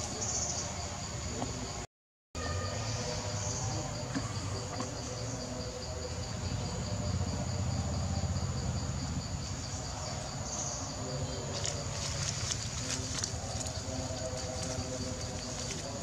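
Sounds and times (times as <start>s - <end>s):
insects buzzing and chirping: 0.0s - 16.0s
leaves rustling: 10.8s - 16.0s.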